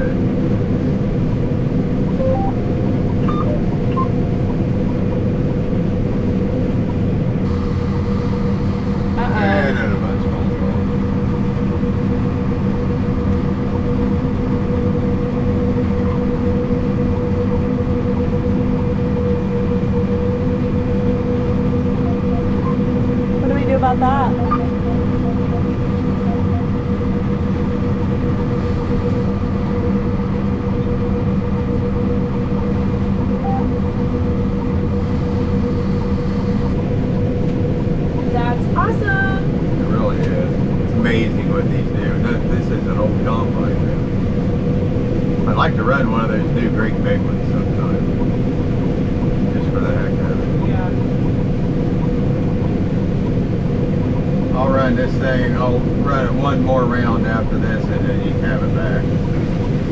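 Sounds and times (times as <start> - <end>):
combine harvester drone: 0.0 - 59.9
person speaking: 23.4 - 26.6.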